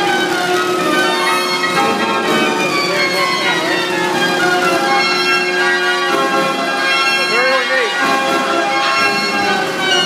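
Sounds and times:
band organ playing pipes and bells: 0.0s - 10.0s.

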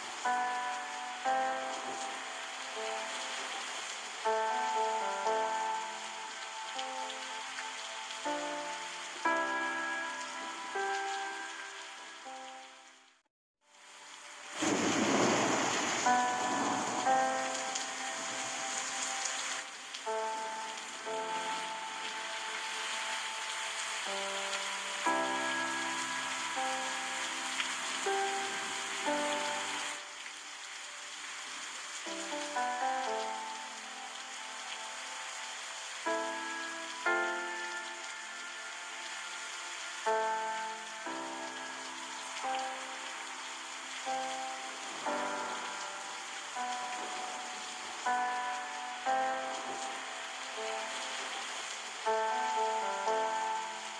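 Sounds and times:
slow instrumental melody: 0.0s - 13.3s, 14.6s - 53.9s
river water rushing: 13.9s - 53.9s.

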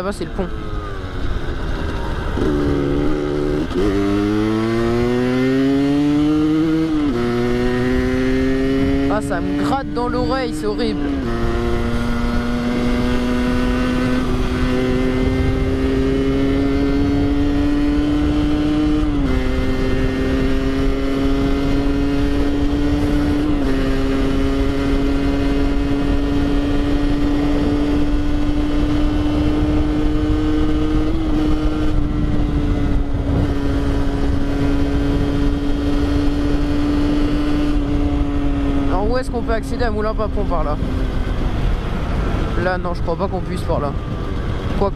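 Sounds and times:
two-stroke motorcycle engine buzzing: 0.0s - 44.9s.

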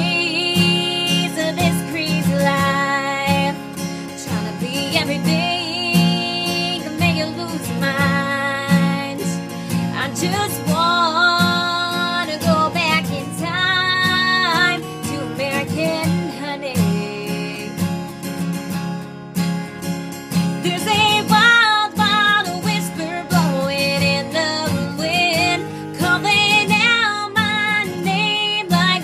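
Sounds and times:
woman singing a country song: 0.0s - 18.8s, 20.3s - 29.0s
acoustic guitar strumming: 0.0s - 29.0s.

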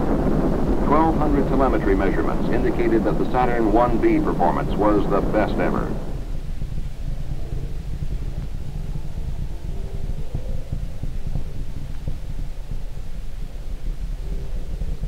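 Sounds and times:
faint hum: 0.0s - 15.0s
rocket engines rumbling: 0.0s - 15.0s.

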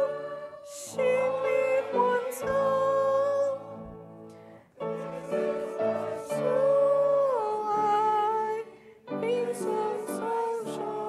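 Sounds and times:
hymn singing: 0.0s - 11.0s.

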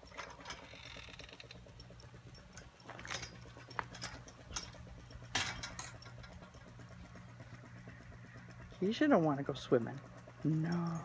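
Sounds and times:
faint low mechanical hum: 0.0s - 11.0s.

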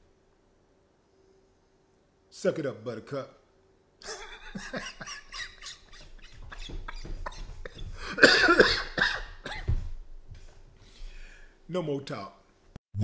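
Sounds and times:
man laughing: 4.0s - 9.1s.

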